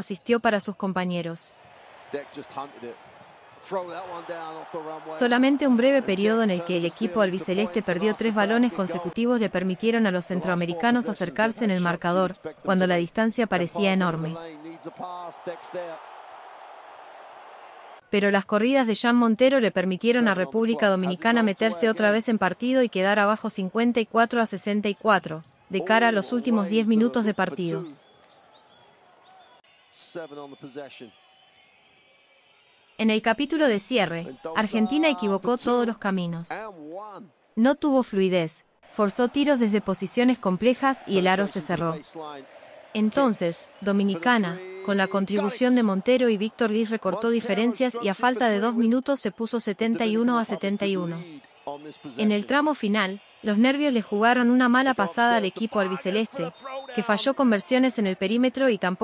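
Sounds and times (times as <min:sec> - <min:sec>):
commentator talking: 0:03.7 - 0:15.9, 0:18.2 - 0:27.9, 0:33.0 - 0:42.4, 0:43.0 - 0:59.0.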